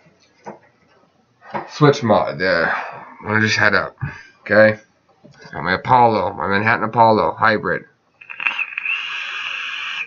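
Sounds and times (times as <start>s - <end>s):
vape crackles: 8.2s - 10.0s
vape hissing: 8.2s - 10.0s.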